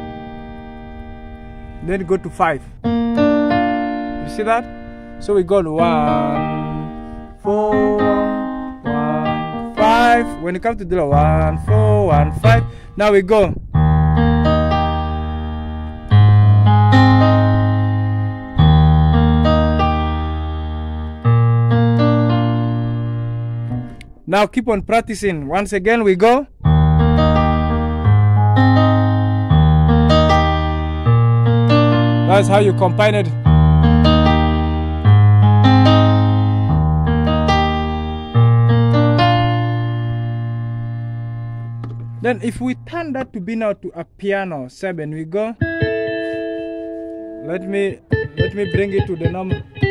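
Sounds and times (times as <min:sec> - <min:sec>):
piano chords: 0:00.0 - 0:24.3, 0:26.5 - 0:43.8, 0:45.5 - 0:49.9.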